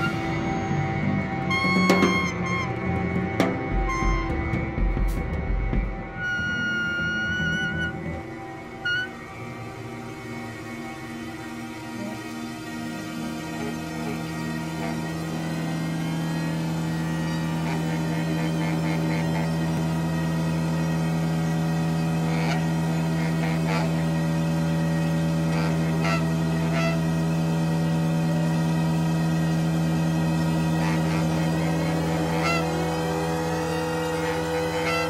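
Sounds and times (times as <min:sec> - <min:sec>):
steady low drone: 0:00.0 - 0:35.0
rising glide: 0:05.9 - 0:35.0.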